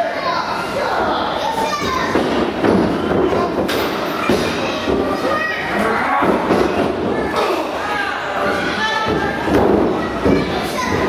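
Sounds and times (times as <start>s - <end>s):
children's high voices: 0.0s - 3.6s, 4.2s - 11.0s.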